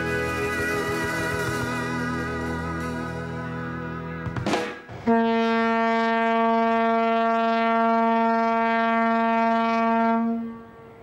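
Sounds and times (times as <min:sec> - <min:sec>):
horn long steady note: 0:00.0 - 0:11.0.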